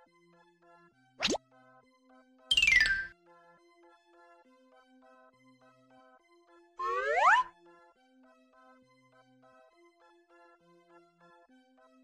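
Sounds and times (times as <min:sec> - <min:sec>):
falling whistle: 0:06.8 - 0:07.5
quick rising whistle: 0:06.8 - 0:07.5.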